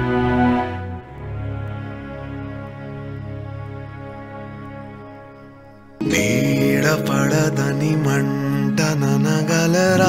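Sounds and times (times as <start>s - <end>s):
film song with wavering melody: 0.0s - 10.0s.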